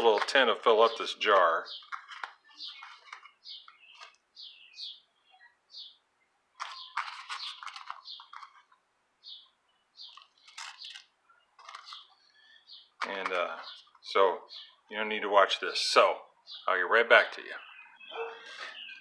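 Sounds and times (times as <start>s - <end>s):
small bird chirping: 0.9s - 6.0s, 6.6s - 14.9s, 17.5s - 19.0s
tobacco crumbled in paper filter: 10.1s - 12.1s.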